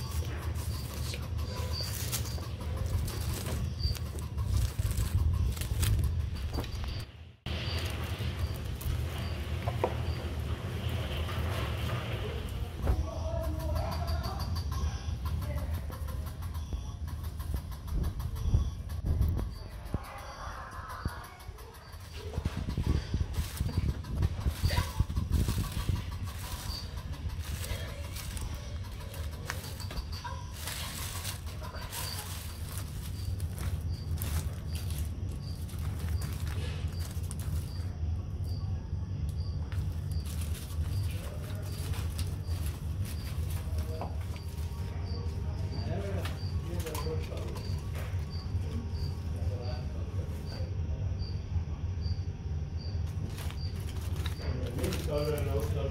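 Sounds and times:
animal rustling in mulch and leaves: 0.0 - 12.5, 22.2 - 38.0, 39.7 - 48.2, 53.0 - 55.9
steady low hum: 0.0 - 55.9.

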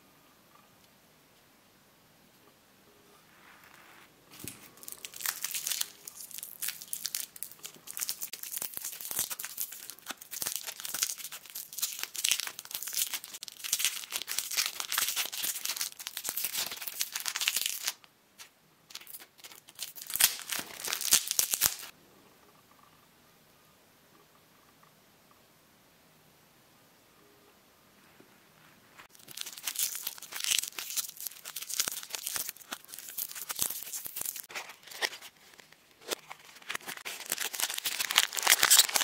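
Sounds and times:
plastic wrapper crinkling and tearing: 4.3 - 21.9, 29.1 - 39.0.

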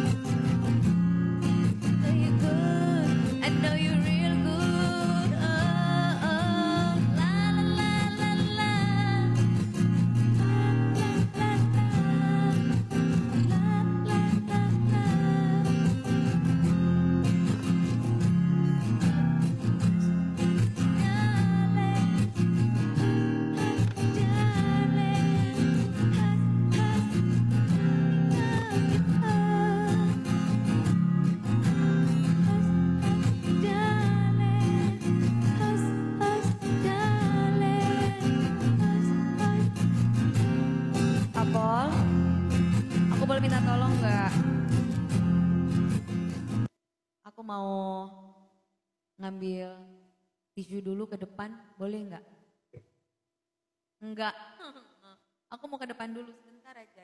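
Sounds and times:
woman singing into a microphone: 1.9 - 9.6, 10.3 - 16.0, 20.8 - 22.5, 23.3 - 31.1, 31.8 - 40.0, 41.4 - 42.2.

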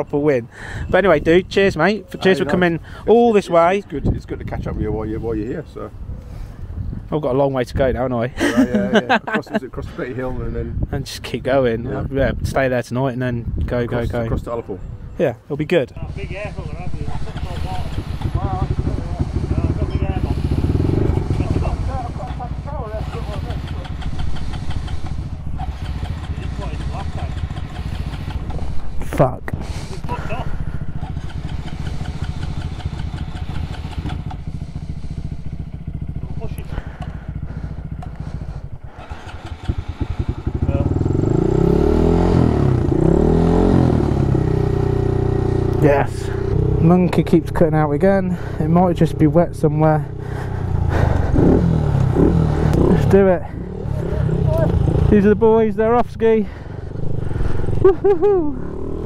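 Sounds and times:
motorcycle engine idling and revving: 0.0 - 12.9, 13.5 - 59.0.

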